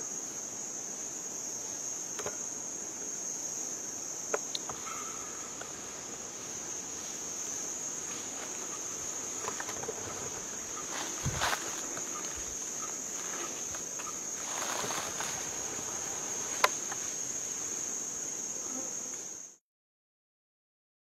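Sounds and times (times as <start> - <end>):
insect chorus: 0.0 - 19.6
rustling through undergrowth: 5.4 - 17.9.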